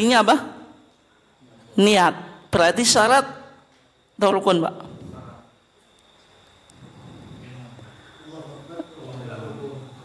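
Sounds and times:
high-pitched whine: 0:00.0 - 0:10.0
men murmuring: 0:06.8 - 0:10.0.

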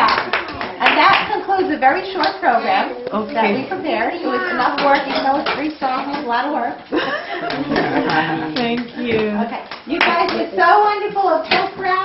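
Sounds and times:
children talking: 0:00.0 - 0:06.9, 0:07.5 - 0:12.0.

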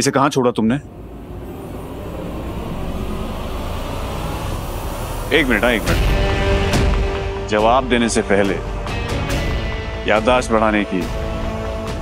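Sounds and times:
low rushing riser effect: 0:00.4 - 0:09.8.

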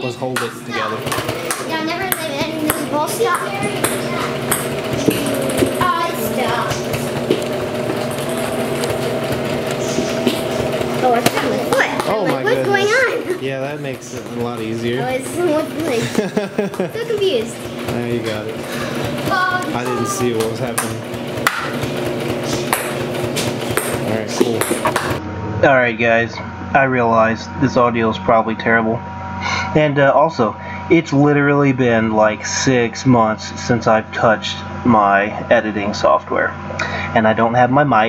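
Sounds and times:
electric sewing machine stitching: 0:00.0 - 0:25.2.

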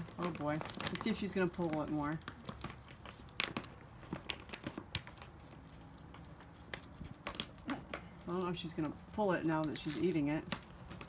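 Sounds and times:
plastic bag crackling: 0:00.0 - 0:05.4
puppy crunching dry kibble: 0:00.0 - 0:11.0.

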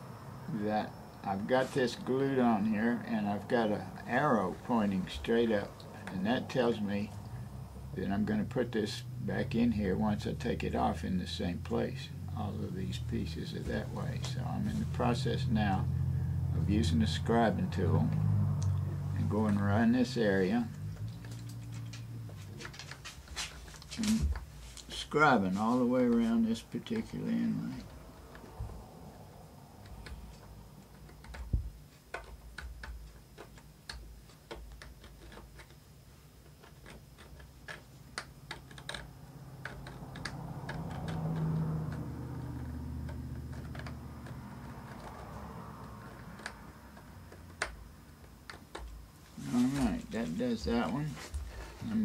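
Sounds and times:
low steady hum: 0:00.0 - 0:52.0
scribing tool scratching wood: 0:19.2 - 0:52.0.

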